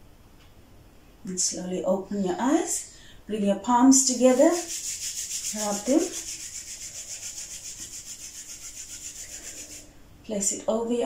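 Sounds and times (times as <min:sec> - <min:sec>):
palms rubbing together: 0:04.0 - 0:09.9.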